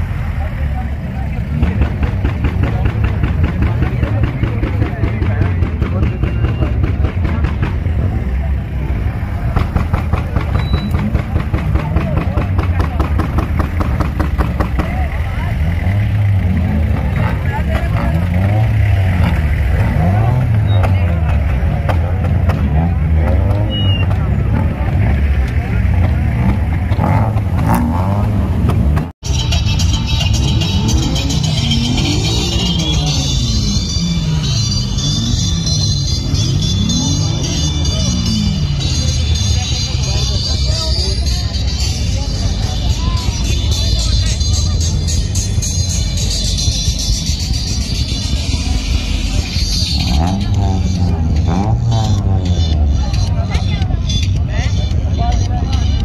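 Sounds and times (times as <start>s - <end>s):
car engine: 0.0s - 56.0s
many voices: 0.0s - 56.0s.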